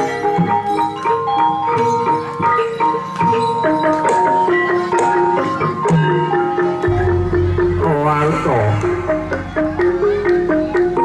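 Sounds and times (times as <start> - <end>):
gamelan music: 0.0 - 11.0.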